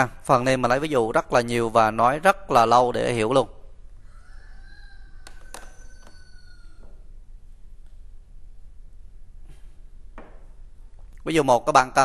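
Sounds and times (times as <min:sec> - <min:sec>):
faint drawn-out animal call: 0:04.0 - 0:07.1.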